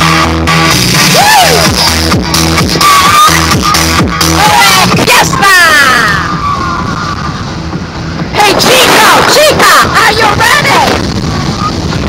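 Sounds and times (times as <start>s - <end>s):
music playing: 0.0s - 12.0s
road and engine noise inside car: 4.5s - 12.0s.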